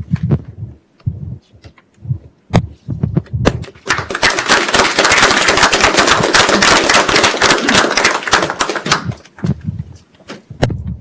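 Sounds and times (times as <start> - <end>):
audience applauding: 3.8 - 9.4.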